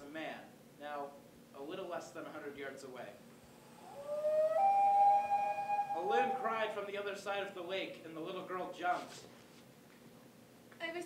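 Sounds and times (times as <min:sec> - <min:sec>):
loon wailing: 0:03.5 - 0:06.8.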